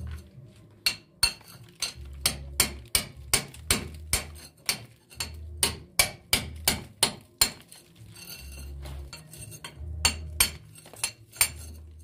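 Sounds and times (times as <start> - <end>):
hammer striking steel chisel: 0.0 - 11.9.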